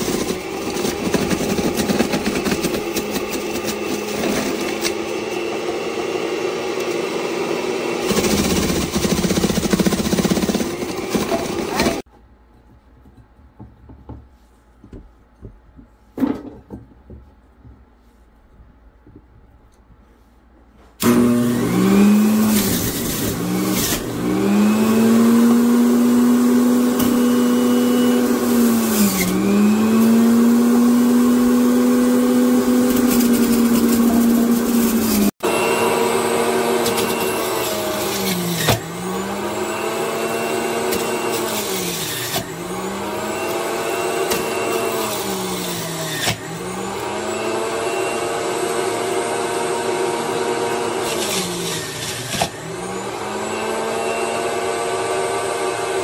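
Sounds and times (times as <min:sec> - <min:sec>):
juicer motor running under load: 0:00.0 - 0:12.0, 0:21.0 - 0:56.0.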